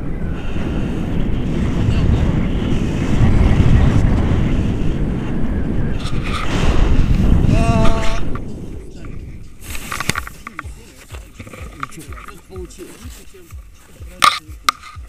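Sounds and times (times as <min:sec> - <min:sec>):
wind rushing over microphone: 0:00.0 - 0:15.0
person calling out: 0:07.5 - 0:08.3.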